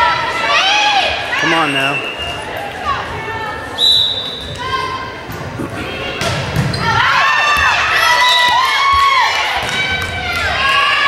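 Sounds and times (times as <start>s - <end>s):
people calling out in a gym: 0.0s - 11.0s.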